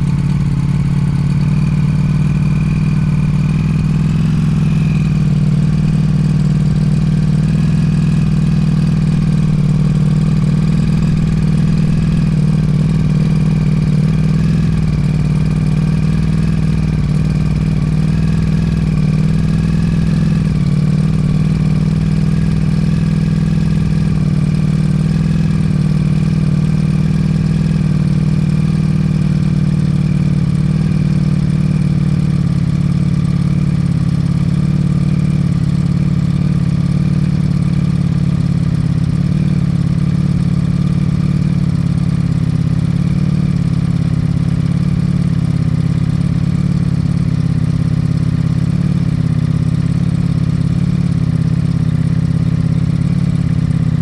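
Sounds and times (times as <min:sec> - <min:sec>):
motorcycle engine idling: 0:00.0 - 0:54.0.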